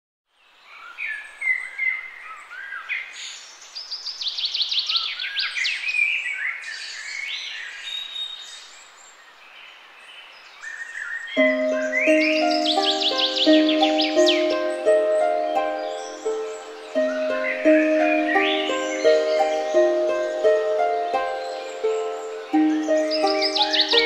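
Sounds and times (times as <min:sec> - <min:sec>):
songbirds singing: 0:00.3 - 0:24.0
soft string and keyboard music: 0:11.4 - 0:24.0.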